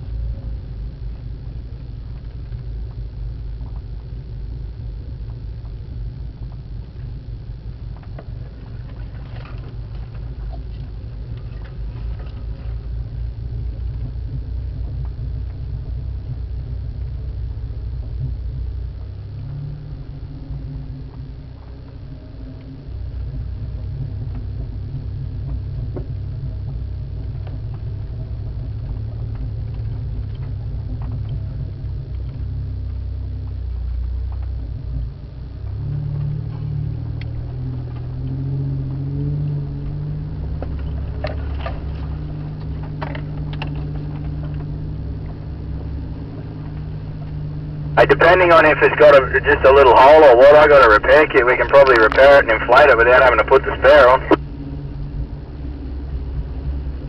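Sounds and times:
vehicle engine at low revs: 0.0s - 57.0s.

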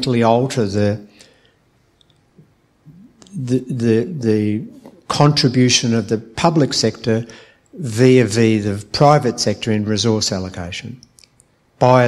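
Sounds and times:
man speaking into a microphone: 0.0s - 1.2s, 2.9s - 11.1s, 11.8s - 12.0s
short low vocal sounds: 2.8s - 5.2s.

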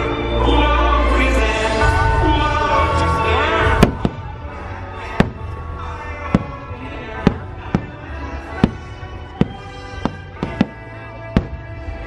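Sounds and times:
show music: 0.0s - 12.0s
fireworks bangs: 3.6s - 12.0s.

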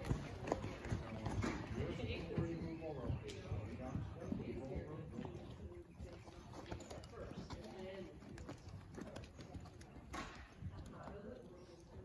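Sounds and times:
horse hoofbeats on sand: 0.0s - 11.2s.

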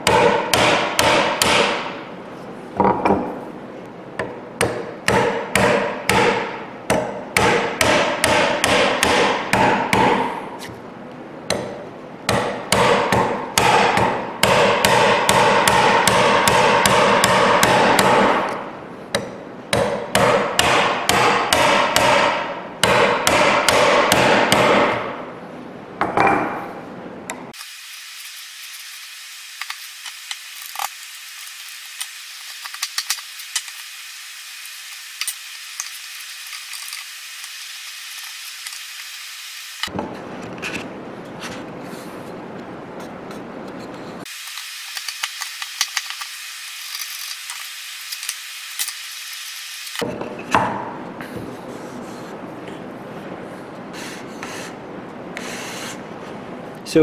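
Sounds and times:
mallet striking chisel: 0.0s - 2.0s, 4.2s - 10.3s, 11.5s - 25.1s.

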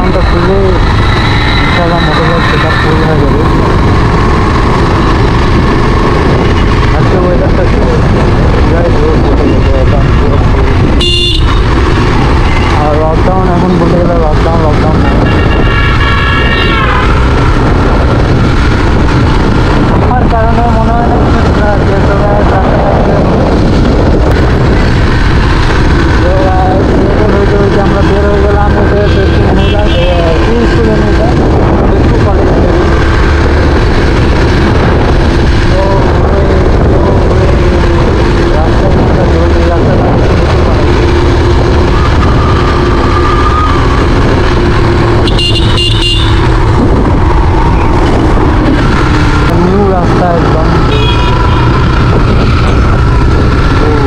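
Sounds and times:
motorcycle engine: 0.0s - 54.0s
wind rushing over microphone: 0.0s - 54.0s
horn beeping: 11.0s - 11.7s, 44.9s - 46.6s, 50.8s - 51.8s.

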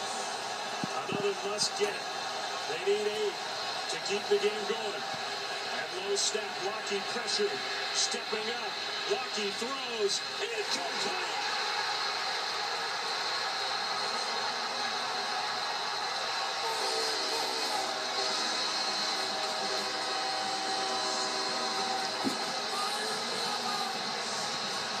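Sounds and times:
stadium crowd cheering: 0.0s - 25.0s.

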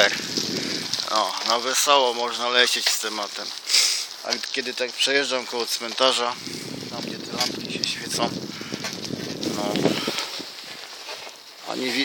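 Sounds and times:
bicycle riding rushing noise: 0.0s - 12.0s.

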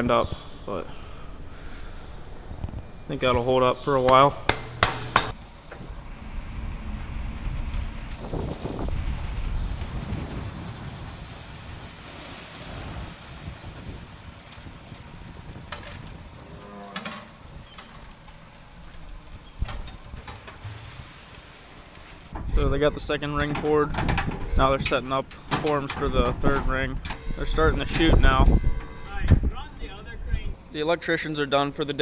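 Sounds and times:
wind on microphone: 0.0s - 18.2s, 22.3s - 25.0s, 25.9s - 30.7s
truck engine rumbling: 0.0s - 31.2s.

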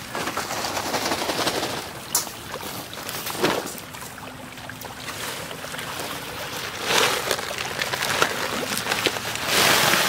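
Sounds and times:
fish feeding at surface: 0.0s - 10.0s
pond water splashing: 0.0s - 10.0s.

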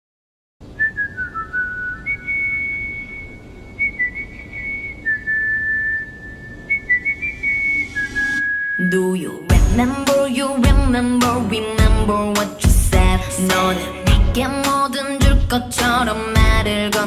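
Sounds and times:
soft low background noise: 0.6s - 12.4s
whistled melody: 0.8s - 9.2s
pop song: 8.8s - 17.0s.

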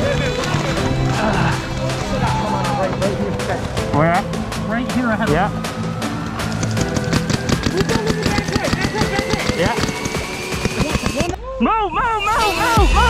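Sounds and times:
background music: 0.0s - 13.0s
paintball marker firing: 6.4s - 11.4s.

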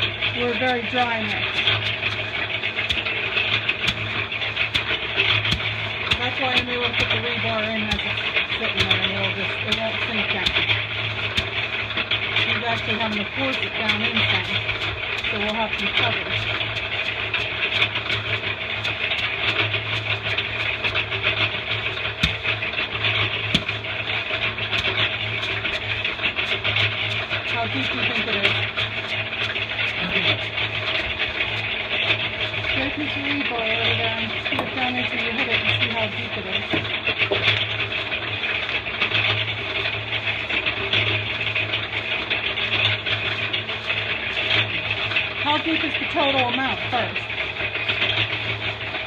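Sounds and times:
engine running with low hum: 0.0s - 49.0s
faint regular ticking: 0.0s - 49.0s
sharp knocks: 20.3s - 27.0s.

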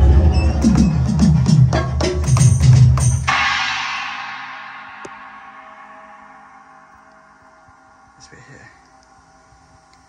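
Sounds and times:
electronic drum kit: 0.0s - 7.0s
cymbal crash ringing out: 3.0s - 8.5s.

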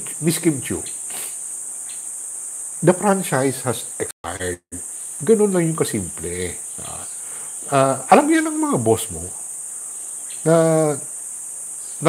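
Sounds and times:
man speaking: 0.0s - 1.3s, 2.8s - 9.4s, 10.5s - 11.0s
steady high-pitched hiss: 0.0s - 12.0s.

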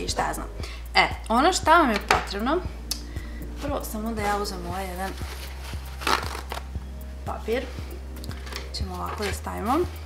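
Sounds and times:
paper towel rustling: 3.6s - 6.7s, 7.5s - 10.0s.

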